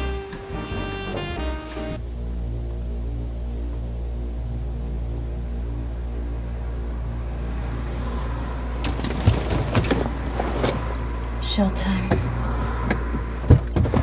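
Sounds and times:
low suspense drone: 0.0s - 13.8s.

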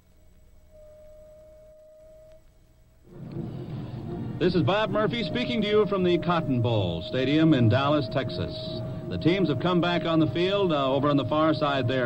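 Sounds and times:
faint steady tone: 0.0s - 12.0s
low hum: 0.0s - 12.0s
rush of background noise: 3.0s - 12.0s.

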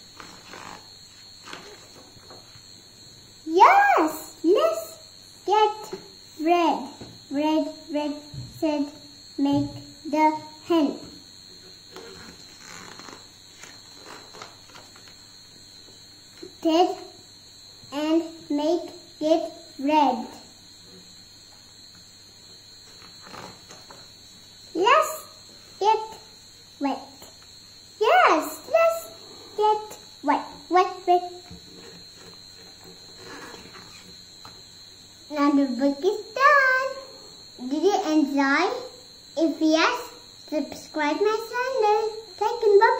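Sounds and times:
faint high-pitched whine: 0.0s - 42.9s
mains hum: 0.0s - 42.9s
rustle of book pages: 0.1s - 2.6s, 11.9s - 15.2s.

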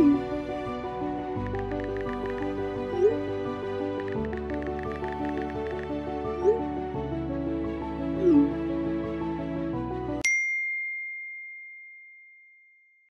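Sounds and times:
background music: 0.0s - 10.2s.

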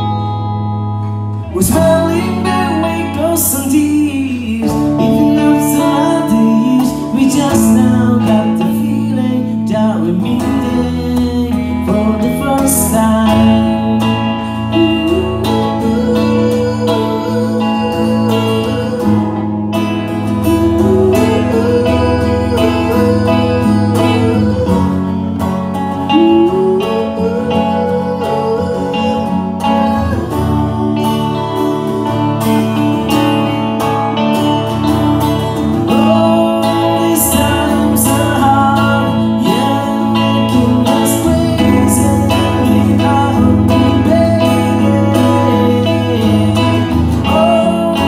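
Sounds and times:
acoustic guitar: 0.0s - 48.0s
man singing: 1.4s - 34.5s, 35.2s - 48.0s.

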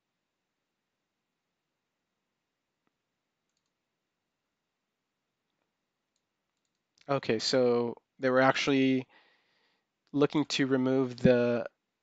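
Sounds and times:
computer mouse click: 2.8s - 3.8s, 6.1s - 7.1s.

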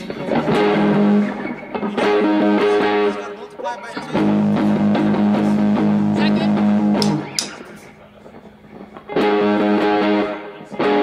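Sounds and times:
bass guitar: 0.0s - 3.3s, 4.0s - 11.0s
electric guitar chords: 0.0s - 11.0s.

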